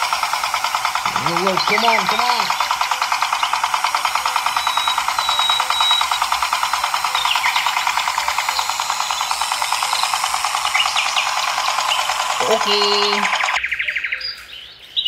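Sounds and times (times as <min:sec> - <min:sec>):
toy tractor motor buzzing: 0:00.0 - 0:13.6.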